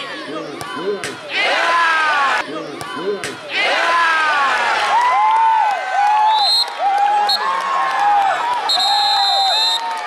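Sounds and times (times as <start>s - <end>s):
football crowd cheering: 0.6s - 10.0s.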